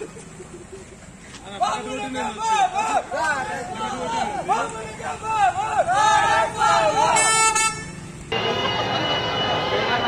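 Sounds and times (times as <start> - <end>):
busy street traffic: 0.0 - 10.0
crowd noise: 0.0 - 10.0
car horn toot: 7.1 - 8.1.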